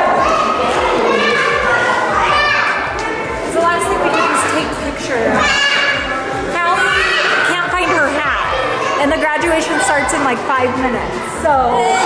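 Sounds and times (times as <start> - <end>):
other voices: 0.0 - 12.0
child calling and chattering: 5.4 - 9.1.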